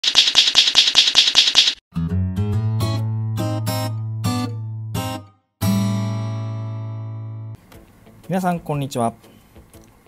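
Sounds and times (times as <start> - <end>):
rapid typewriter key clicks: 0.0 - 1.8
music: 1.9 - 10.0.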